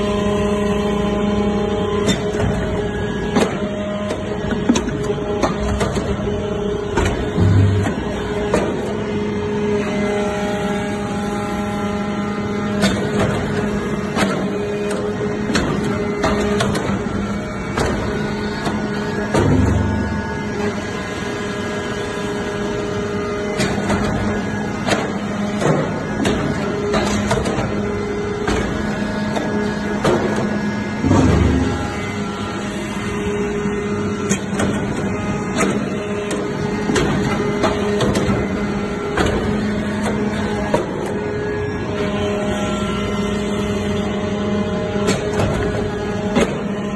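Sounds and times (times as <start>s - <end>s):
hydraulic pump hum: 0.0s - 46.9s.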